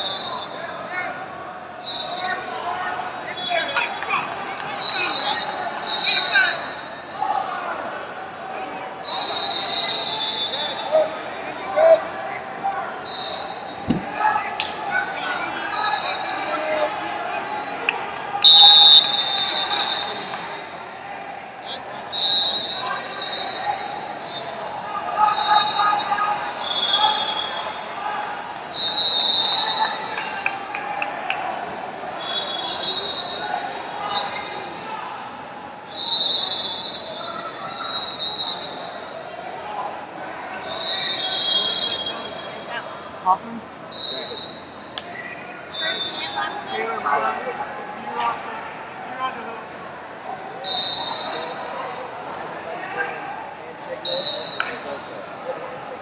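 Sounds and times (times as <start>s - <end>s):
murmur of crowd voices: 0.0s - 56.0s
shrill referee whistle blasts: 18.4s - 20.2s, 35.9s - 38.9s, 40.7s - 42.5s, 45.7s - 46.5s, 50.6s - 51.7s.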